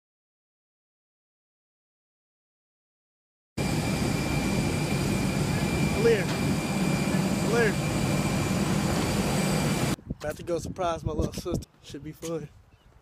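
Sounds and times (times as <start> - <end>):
jet aircraft whine: 3.6 - 10.0.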